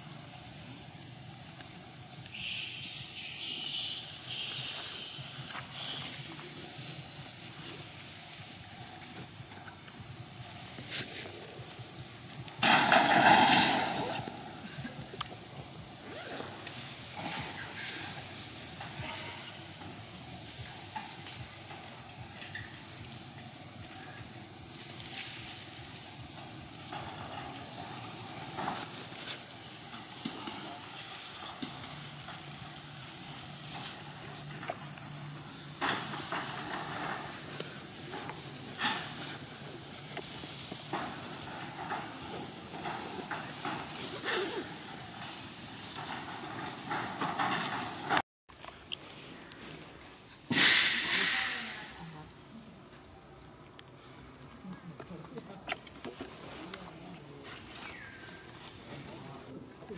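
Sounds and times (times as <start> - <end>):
outdoor background hiss: 0.0 - 59.9.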